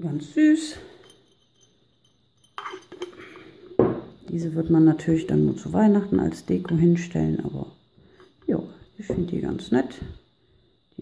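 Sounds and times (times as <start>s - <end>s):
glass jar clinking: 0.6s - 4.1s
jar knocking on wooden table: 3.8s - 4.1s.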